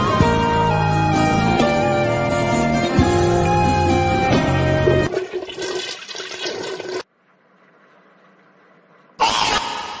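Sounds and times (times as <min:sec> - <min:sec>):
toilet flushing: 0:04.8 - 0:07.1.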